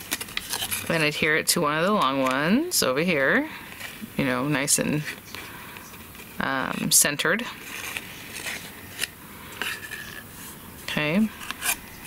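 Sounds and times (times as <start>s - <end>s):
cardstock rubbing and rustling: 0.0s - 1.2s, 4.8s - 12.0s.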